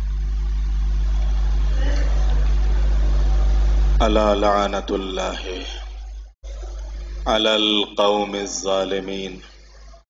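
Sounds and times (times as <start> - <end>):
sound system hum and rumble: 0.0 - 10.0.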